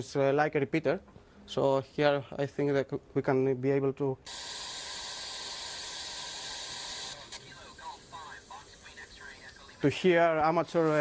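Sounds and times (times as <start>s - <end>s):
radio static hiss: 4.3s - 11.0s
faint voice over radio: 7.3s - 9.8s.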